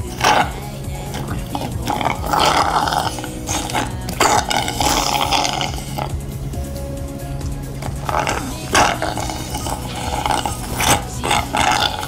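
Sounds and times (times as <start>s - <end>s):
slurping through a straw: 0.0s - 6.2s, 7.8s - 12.0s.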